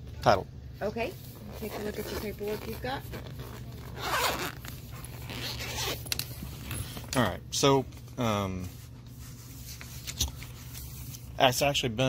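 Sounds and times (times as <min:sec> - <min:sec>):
zipper rasping: 0:01.3 - 0:07.0.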